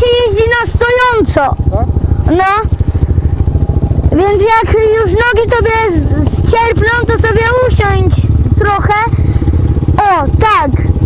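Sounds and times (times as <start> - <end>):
motorcycle engines revving: 0.0 - 11.0.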